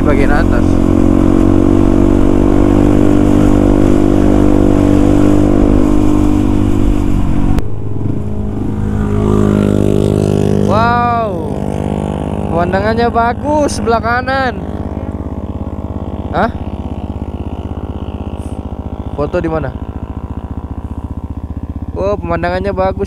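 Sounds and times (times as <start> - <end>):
motorcycle engine running: 0.0 - 23.0
motorcycle engine idling: 4.6 - 23.0
person talking: 10.6 - 11.6, 12.5 - 14.7, 16.3 - 16.6.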